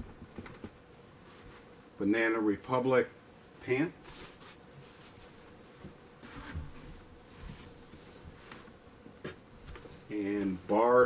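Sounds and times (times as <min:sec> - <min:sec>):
faint steady hum: 0:00.0 - 0:11.0
clothing and plastic rustling: 0:04.1 - 0:05.5.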